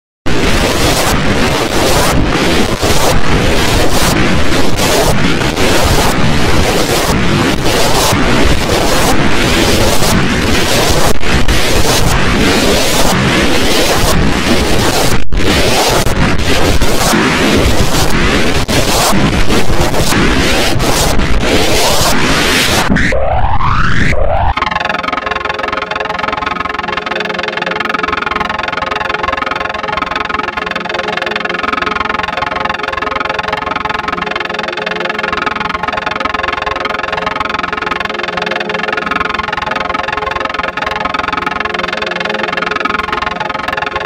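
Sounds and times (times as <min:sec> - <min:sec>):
harsh distorted noise: 0:00.3 - 0:27.1.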